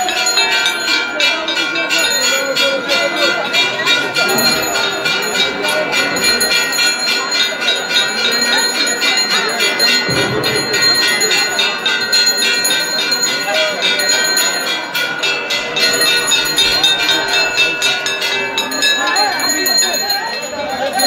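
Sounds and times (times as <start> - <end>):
crowd voices: 0.0 - 21.0
temple bells ringing rapidly: 0.0 - 21.0.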